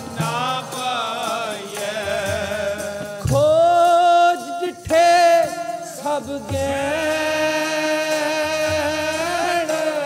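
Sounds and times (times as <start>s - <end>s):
chanted devotional singing: 0.0s - 10.0s
harmonium: 0.0s - 10.0s
tabla: 0.0s - 10.0s.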